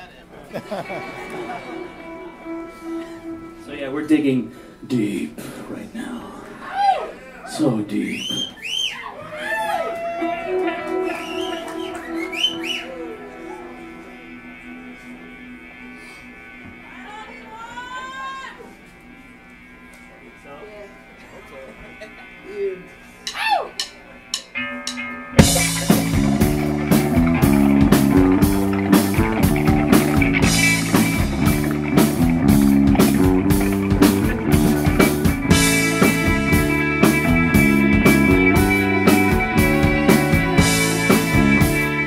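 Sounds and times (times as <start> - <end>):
rock band playing: 0.5 - 4.3, 9.7 - 42.0
whistle-like gliding tones: 11.1 - 13.3.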